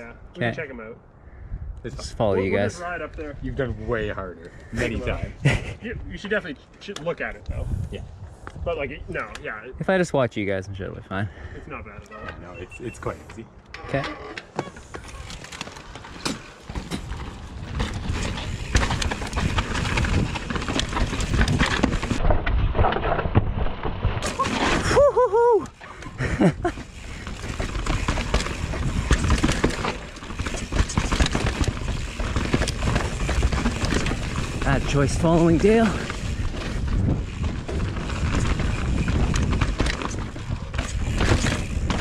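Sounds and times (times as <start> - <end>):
rushing air on microphone: 7.5 - 8.7
bike frame and chain rattling: 13.8 - 22.2, 25.6 - 42.0
bike tyres rolling and skidding: 14.2 - 42.0.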